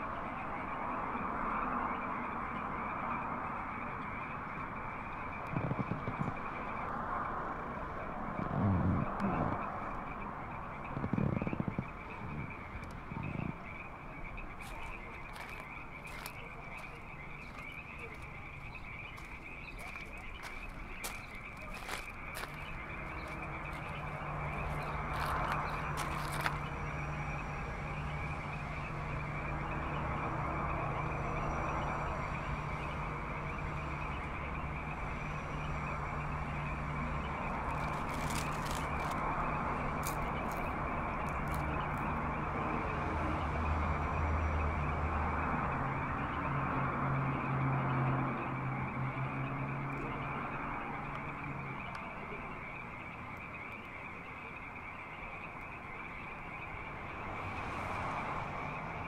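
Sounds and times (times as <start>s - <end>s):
high-pitched night chorus: 0.0s - 59.0s
crackles and clicks: 3.9s - 26.9s, 35.6s - 42.2s, 51.1s - 55.9s.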